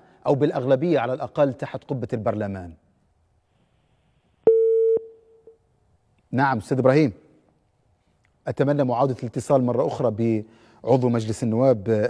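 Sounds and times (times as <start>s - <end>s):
telephone line beep: 4.5s - 5.2s.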